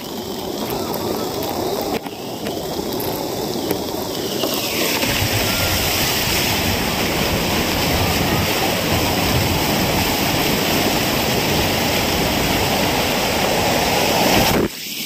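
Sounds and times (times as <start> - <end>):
heavy downpour: 0.0 - 15.0
motorbike churning floodwater: 0.0 - 15.0.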